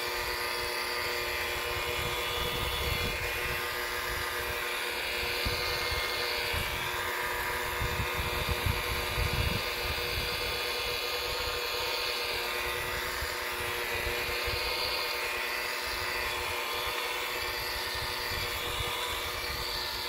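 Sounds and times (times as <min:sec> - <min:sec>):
rotary polisher motor whine: 0:00.0 - 0:20.0.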